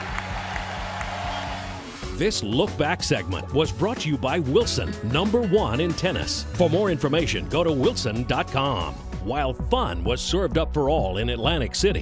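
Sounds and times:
faint crowd applause: 0.0s - 2.0s
background music with low beat: 0.0s - 12.0s.

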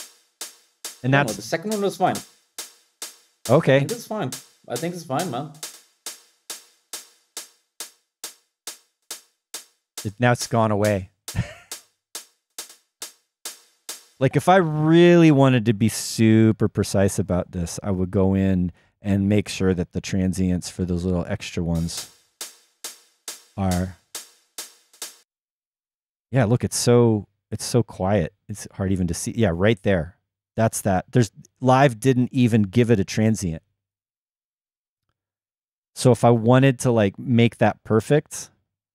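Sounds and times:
drum machine hi-hat ticks: 0.0s - 14.8s, 21.7s - 25.2s.

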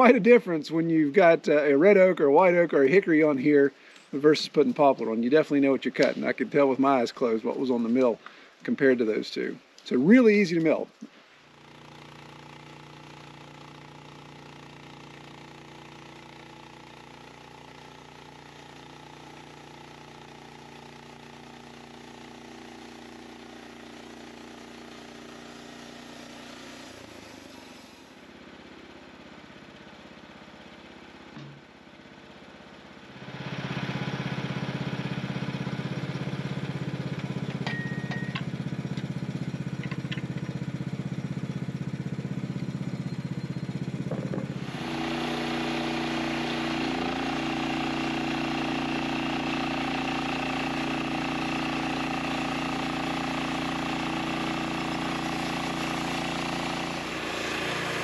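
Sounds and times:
small gasoline engine running: 11.4s - 58.0s.

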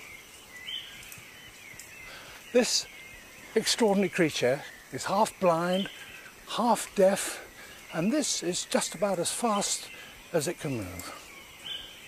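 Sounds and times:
birds calling: 0.0s - 12.0s
insects chirring: 0.0s - 12.0s.

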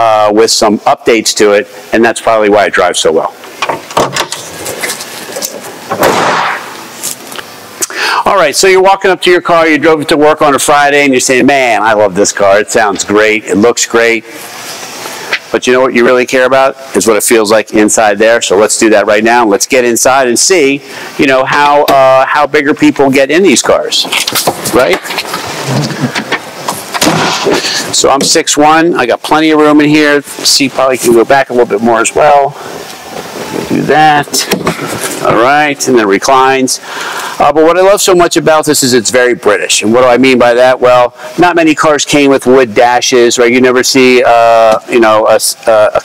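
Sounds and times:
clothing and paper rustling: 4.3s - 5.8s, 24.0s - 27.9s.

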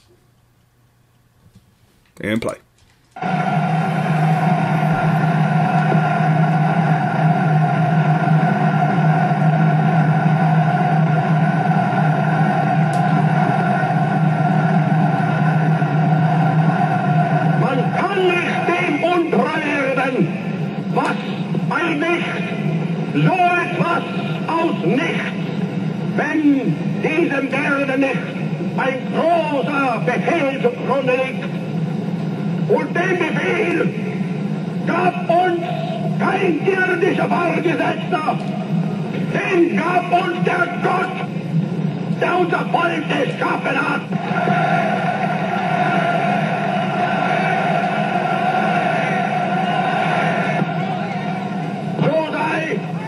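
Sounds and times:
film soundtrack hiss and hum: 0.0s - 53.0s
man speaking: 2.2s - 2.7s.

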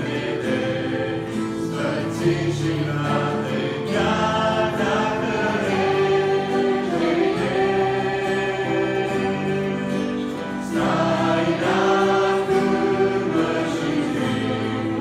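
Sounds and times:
choir singing a hymn: 0.0s - 15.0s
instrumental accompaniment: 0.0s - 15.0s.

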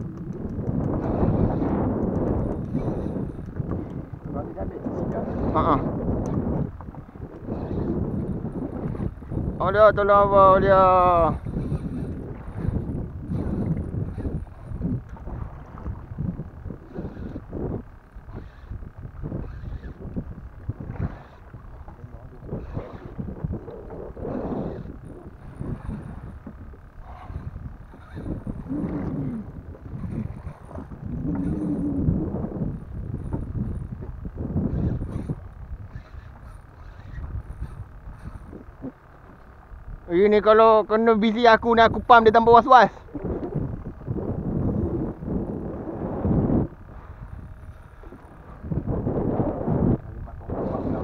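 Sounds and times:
water slapping against boat: 0.0s - 39.6s
wind buffeting microphone: 0.0s - 51.0s.

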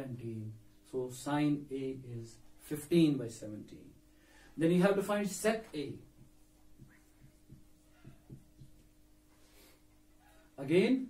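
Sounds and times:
low steady hum: 0.0s - 11.0s
marker tapping on whiteboard: 6.0s - 8.9s.

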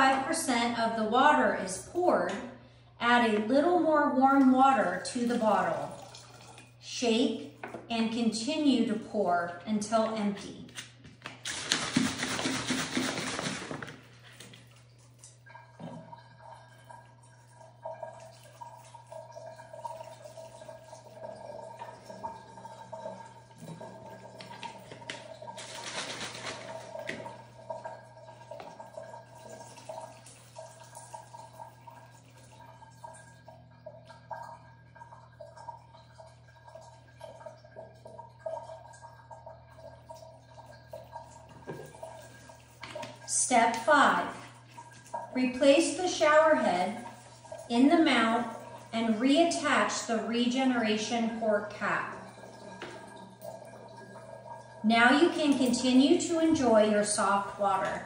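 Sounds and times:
water trickling and dripping: 0.0s - 11.4s, 13.4s - 58.0s
plastic bottle shaken: 11.2s - 14.5s, 24.5s - 27.3s.

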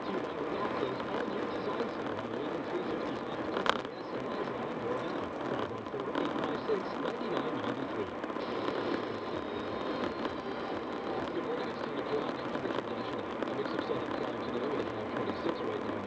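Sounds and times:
car road and engine noise: 0.0s - 16.0s
faint voice: 9.3s - 16.0s.

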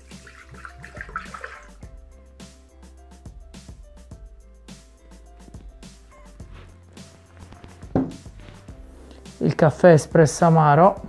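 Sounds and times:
liquid pouring into metal bowl: 0.0s - 1.8s
quiet background music: 0.0s - 11.0s.

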